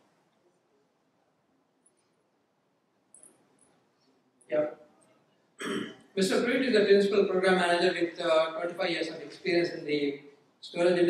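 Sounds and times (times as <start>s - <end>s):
man clearing his throat: 5.6s - 6.0s.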